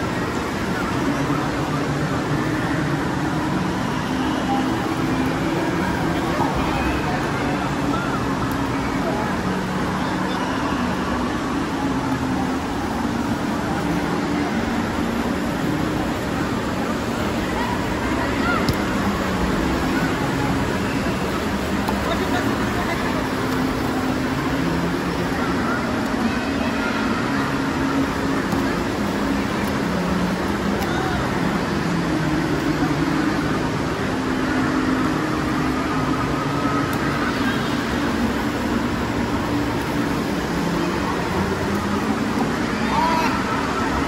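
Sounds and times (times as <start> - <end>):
voices chattering and calling: 0.0 - 44.0
water splashing: 0.0 - 44.0.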